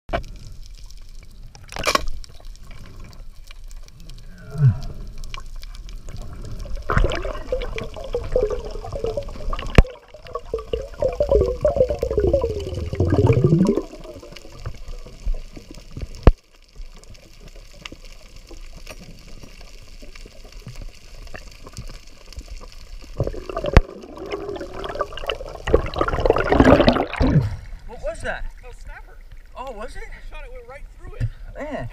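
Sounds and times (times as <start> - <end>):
water bubbling underwater: 1.2 - 27.9.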